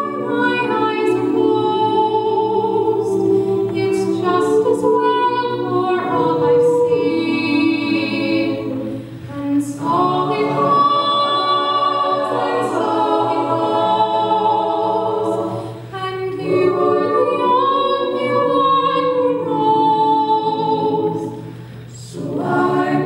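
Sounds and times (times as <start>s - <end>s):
a cappella group singing: 0.0s - 23.0s.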